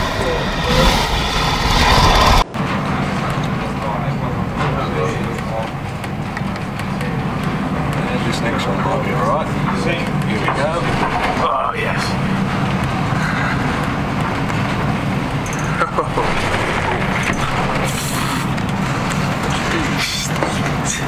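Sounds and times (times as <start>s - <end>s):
strong wind noise: 0.0s - 3.8s
waves and spray breaking: 14.0s - 20.0s.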